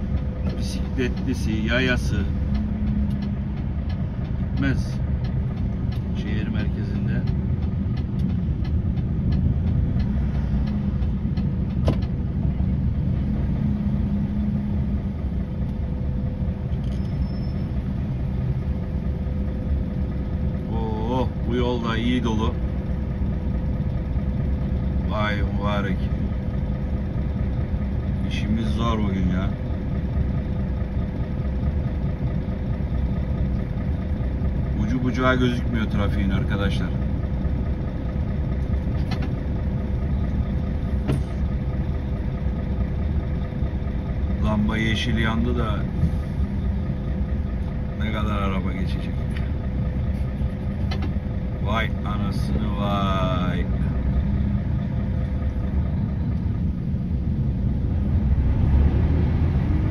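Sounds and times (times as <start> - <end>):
diesel truck engine from inside cab: 0.0 - 59.9.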